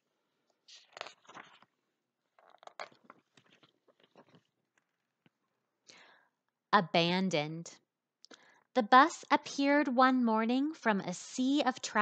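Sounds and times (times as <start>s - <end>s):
book pages rustling: 0.5s - 5.4s.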